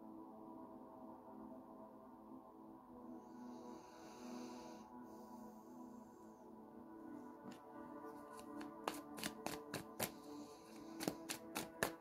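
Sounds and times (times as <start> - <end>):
soft ambient music: 0.0 - 12.0
cards being shuffled: 7.5 - 10.2, 10.8 - 12.0.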